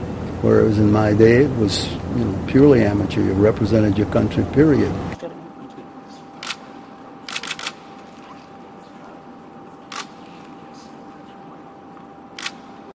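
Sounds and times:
room noise: 0.0s - 13.0s
camera shutters clicking: 6.4s - 8.1s, 9.9s - 10.5s, 12.4s - 12.8s.

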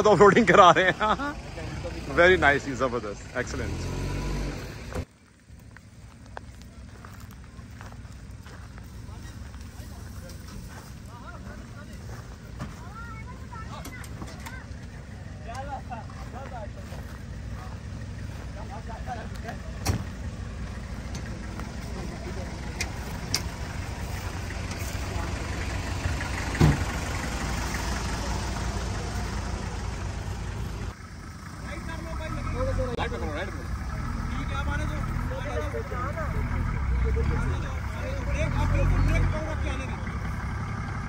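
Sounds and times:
off-road engines idling: 0.0s - 41.0s.

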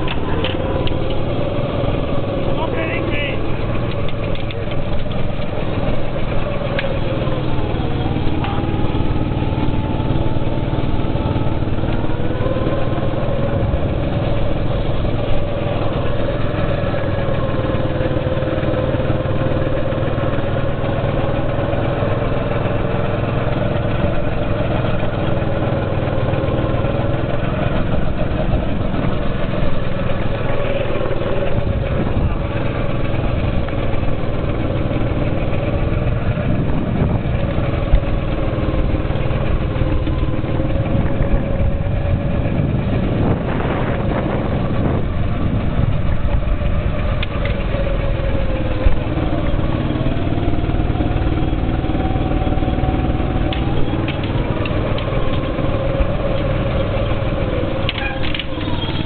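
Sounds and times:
go-kart engine running hard: 0.0s - 59.0s.

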